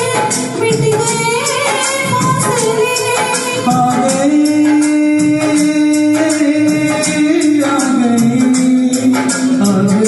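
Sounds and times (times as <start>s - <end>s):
steady percussion beat: 0.0s - 10.0s
woman singing into a microphone: 0.0s - 10.0s.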